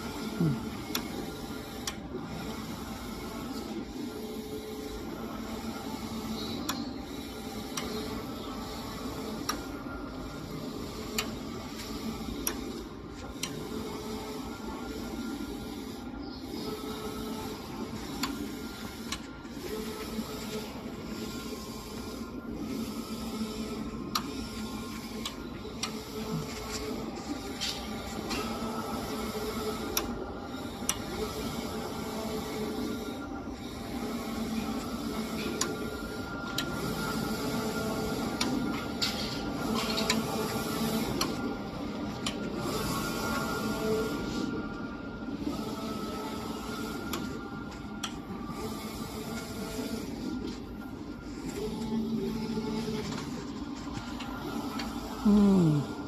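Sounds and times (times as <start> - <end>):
printer mechanical whir: 0.0 - 56.0.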